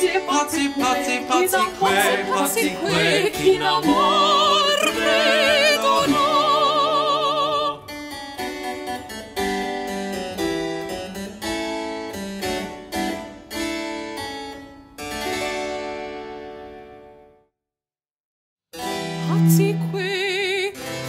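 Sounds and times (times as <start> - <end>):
operatic singing with vibrato: 0.0 - 7.9
harpsichord plucked chords: 0.0 - 14.3.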